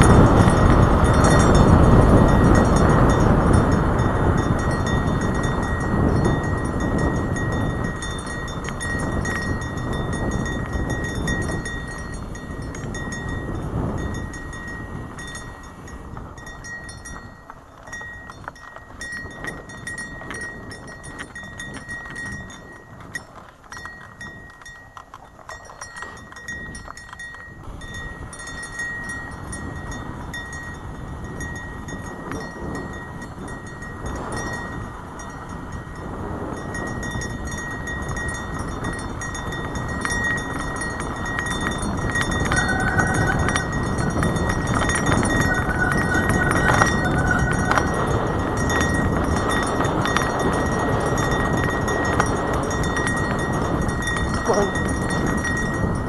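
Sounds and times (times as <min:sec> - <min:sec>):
bike rattling: 0:00.0 - 0:56.0
wind on microphone: 0:00.0 - 0:56.0
tyres crunching on dirt: 0:05.7 - 0:30.8, 0:36.8 - 0:55.8.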